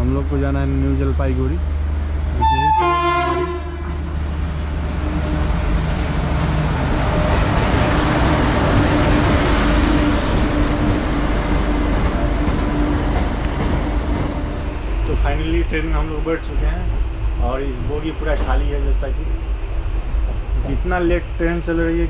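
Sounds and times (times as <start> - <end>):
train rumbling past: 0.0 - 22.0
train wheels squealing: 9.7 - 14.8.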